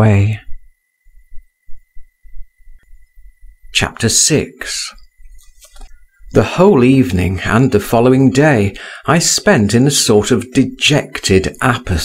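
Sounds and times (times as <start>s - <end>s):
high-pitched whine: 0.0s - 12.0s.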